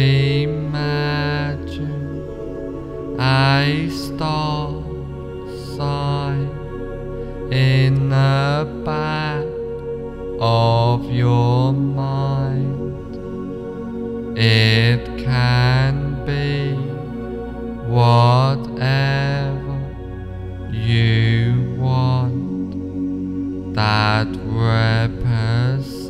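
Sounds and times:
chant-like vocal tones: 0.0 - 26.0
low drone: 0.0 - 26.0.

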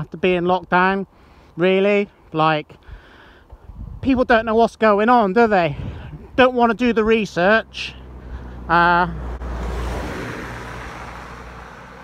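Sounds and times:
van engine and tyre noise: 3.7 - 12.0.

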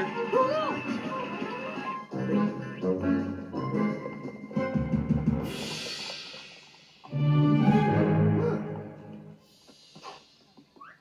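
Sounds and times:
orchestral cartoon music: 0.0 - 6.0, 7.1 - 9.4.

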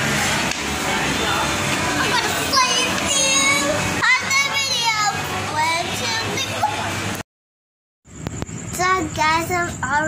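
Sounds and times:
steady background noise: 0.0 - 7.2, 8.1 - 10.0.

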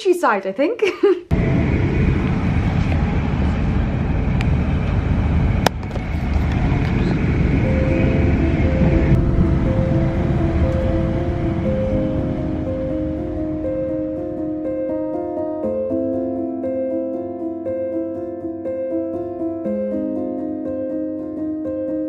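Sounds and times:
moving train rumble: 1.3 - 15.8
background music with held notes: 7.5 - 22.0.

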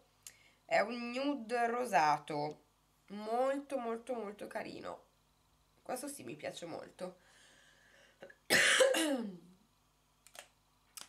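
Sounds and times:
woman coughing: 8.5 - 9.4.

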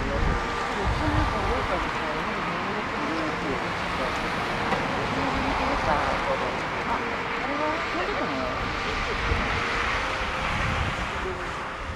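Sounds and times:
distant jet engines taxiing: 0.0 - 11.9
people's voices: 0.0 - 11.9.

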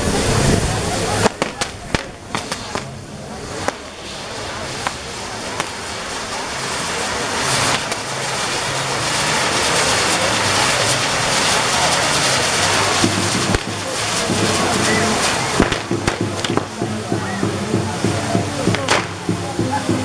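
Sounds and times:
fireworks hissing crackle: 0.0 - 20.0
sharp firework pops: 1.1 - 19.6.

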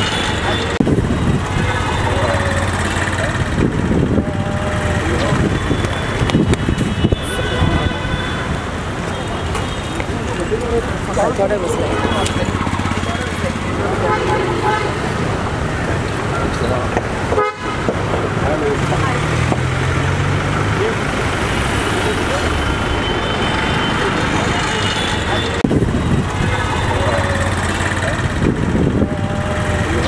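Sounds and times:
vehicle horns tooting: 0.0 - 3.1, 4.0 - 15.4, 17.2 - 18.0, 22.0 - 28.2
people's voices: 0.0 - 30.0
street traffic: 0.0 - 30.0.

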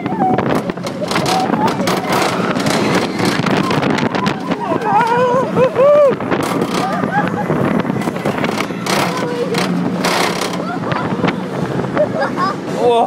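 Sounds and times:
wind on microphone: 0.0 - 12.9
riders' voices: 0.0 - 13.0
roller coaster mechanical hum: 0.0 - 13.0.

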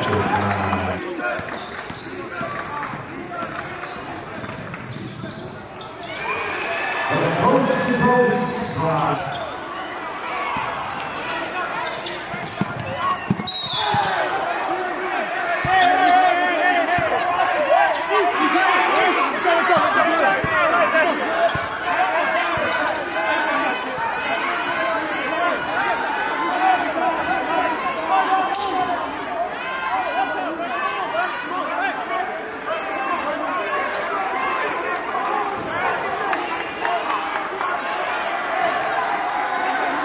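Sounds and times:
crowd talking and shouting: 0.0 - 40.0.

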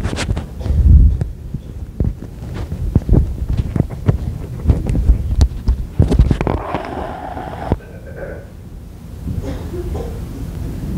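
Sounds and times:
microphone handling thumps and rustling: 0.0 - 6.9.

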